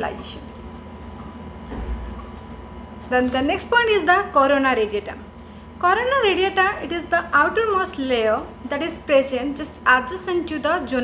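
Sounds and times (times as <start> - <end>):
faint steady high whine: 0.0 - 11.0.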